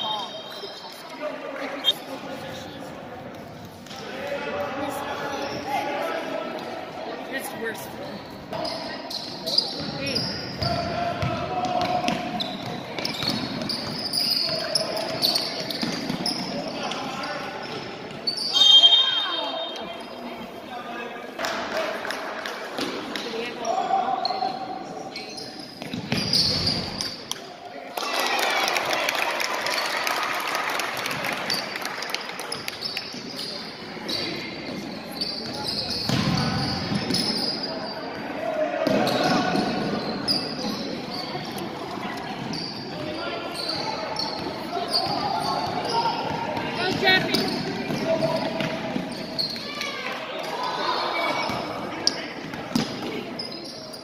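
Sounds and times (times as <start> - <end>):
shoe squeaks: 1.8 - 2.2, 7.9 - 10.8, 12.3 - 20.2, 24.2 - 27.2, 32.5 - 38.2, 39.0 - 49.9, 51.1 - 54.0
people shouting and cheering: 43.0 - 52.0.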